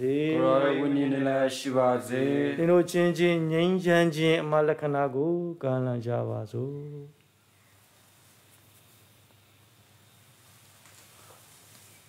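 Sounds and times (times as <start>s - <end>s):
man chanting a prayer: 0.0s - 7.2s.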